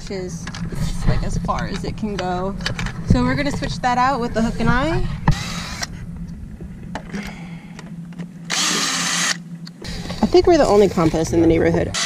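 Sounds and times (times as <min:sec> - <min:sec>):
power drill driving screws: 0:05.3 - 0:05.9, 0:08.5 - 0:09.4.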